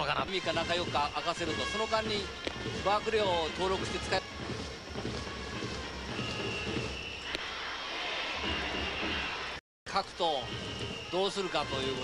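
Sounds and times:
stadium crowd din: 0.0 - 12.0.

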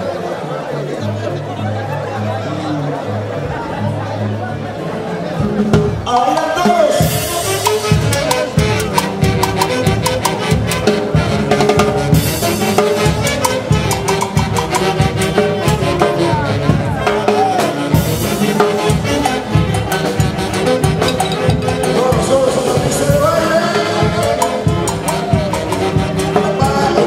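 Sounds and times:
band playing lively dance tune: 0.0 - 27.0.

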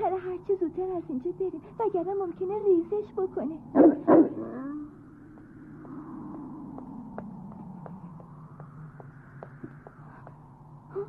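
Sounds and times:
dog barking: 3.7 - 4.6.

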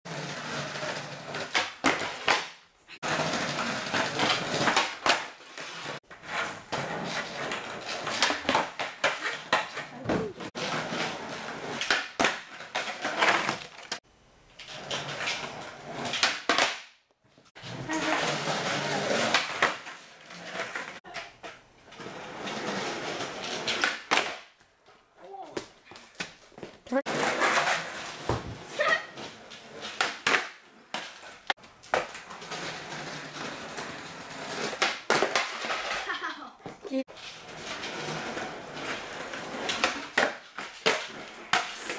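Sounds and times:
skateboard wheels rolling on concrete: 0.0 - 41.9
skateboard clacks popping and landing: 1.4 - 5.4, 11.7 - 14.0, 16.1 - 17.0, 23.6 - 24.5, 29.8 - 32.4, 34.6 - 36.8, 37.7 - 41.9.

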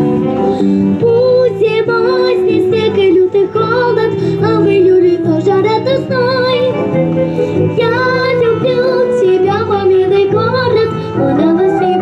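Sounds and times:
backing track chords: 0.0 - 12.0
girl singing pop song: 0.0 - 12.0.

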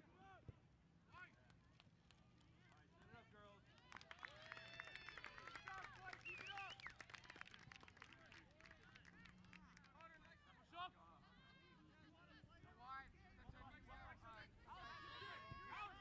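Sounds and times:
distant crowd shouting and cheering: 14.3 - 16.0.

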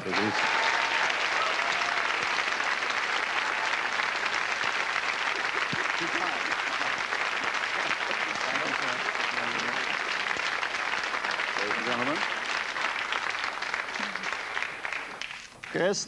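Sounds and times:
audience applauding: 0.0 - 16.0.

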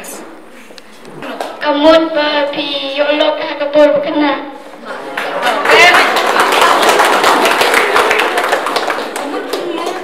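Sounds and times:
children clapping: 5.1 - 10.0.

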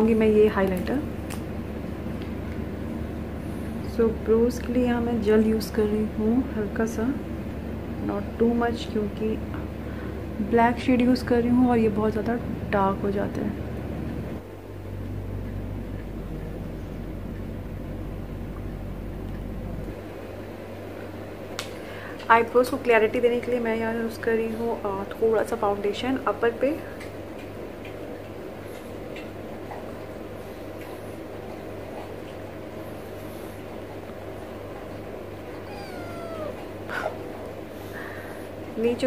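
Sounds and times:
low steady hum: 0.0 - 39.0
cat meowing: 35.5 - 37.1.

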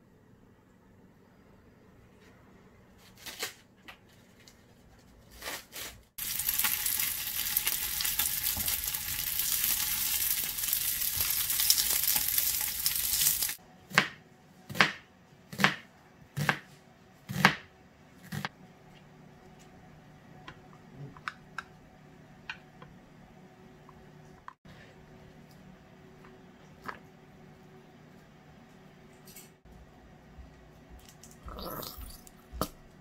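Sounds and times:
dumplings sizzling in frying pan: 6.2 - 13.6
knife chopping on plastic board: 13.9 - 16.7, 17.3 - 17.7.

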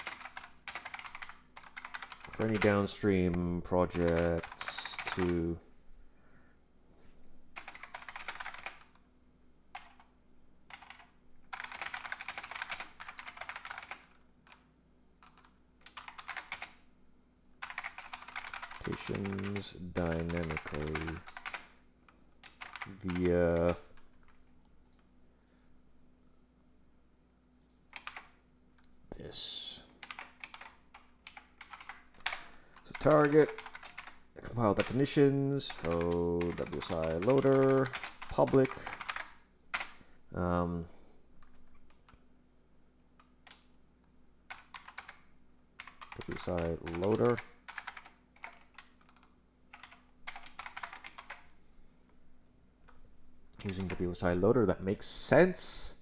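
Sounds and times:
typing on computer keyboard: 0.0 - 5.5, 7.6 - 9.0, 9.7 - 10.1, 10.7 - 16.8, 17.6 - 21.8, 22.4 - 25.6, 27.5 - 29.0, 30.0 - 40.0, 44.5 - 51.5, 52.9 - 54.1.

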